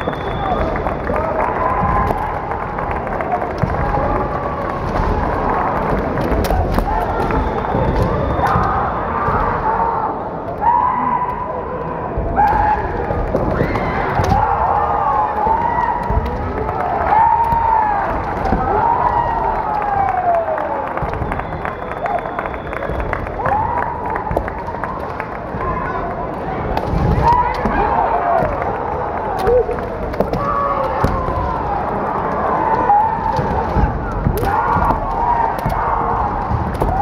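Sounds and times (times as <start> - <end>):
crowded hall din: 0.0 - 37.0
fighters shouting: 27.0 - 37.0.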